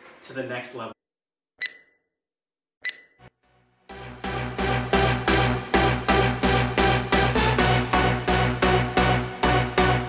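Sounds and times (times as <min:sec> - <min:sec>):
electronic countdown beeps: 0:01.6 - 0:02.1, 0:02.8 - 0:03.3.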